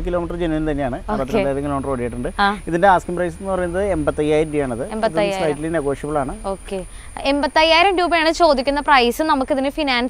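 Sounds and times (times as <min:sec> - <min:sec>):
person talking: 0:01.0 - 0:01.7, 0:04.8 - 0:05.8.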